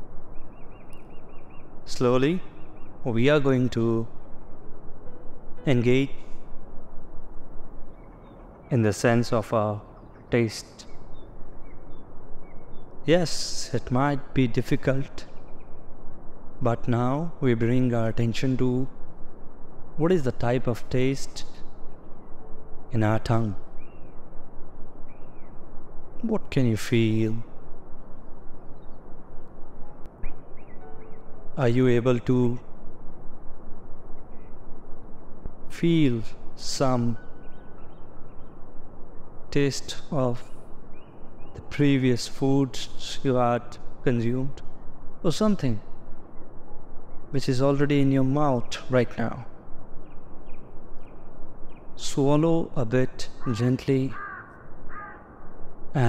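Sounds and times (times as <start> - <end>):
faint bird chirps: 0.0 - 6.7, 7.6 - 19.0, 20.3 - 32.8, 33.9 - 56.0
steady low rumble: 0.0 - 53.1
crow cawing: 53.4 - 55.6.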